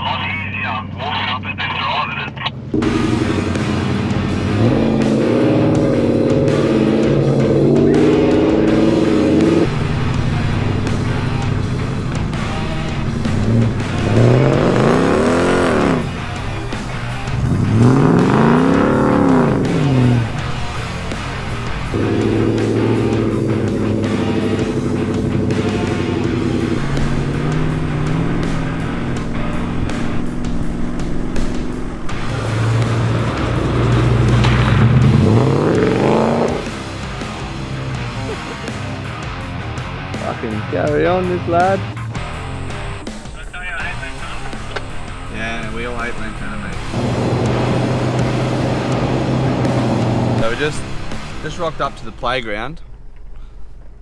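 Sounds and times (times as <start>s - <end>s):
off-road engine revving: 0.0s - 53.2s
background music held chords: 2.8s - 54.0s.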